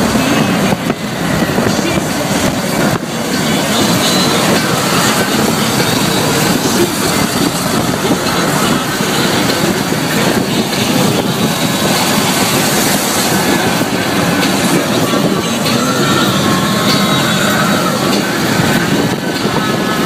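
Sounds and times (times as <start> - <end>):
tyre noise on wet road: 0.0 - 20.0
wind rush inside car: 0.0 - 20.0.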